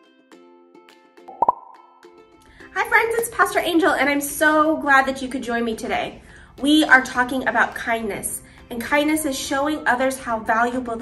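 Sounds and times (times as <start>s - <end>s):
sharp double pop effect: 1.3s - 1.9s.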